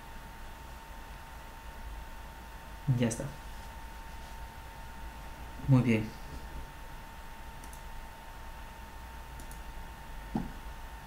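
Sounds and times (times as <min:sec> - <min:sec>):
low electrical hum: 0:00.0 - 0:11.0
computer mouse clicks: 0:07.6 - 0:07.9, 0:09.4 - 0:09.7.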